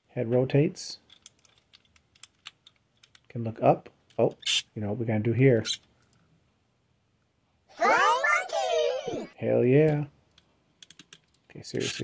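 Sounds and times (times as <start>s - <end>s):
small clicks of toy joints: 1.0s - 3.3s, 5.7s - 6.3s, 9.8s - 12.0s.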